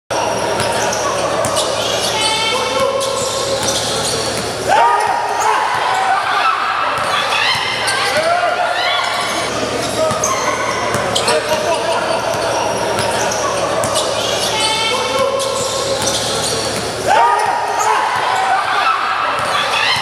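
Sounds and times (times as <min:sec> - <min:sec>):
basketball bouncing in hall: 0:00.1 - 0:20.0
people shouting and chattering: 0:00.1 - 0:20.0
loud shout: 0:04.6 - 0:10.9, 0:17.0 - 0:20.0.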